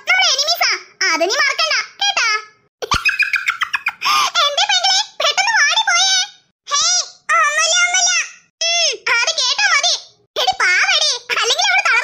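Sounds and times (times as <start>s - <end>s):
high-pitched cartoon voices talking: 0.0s - 12.0s.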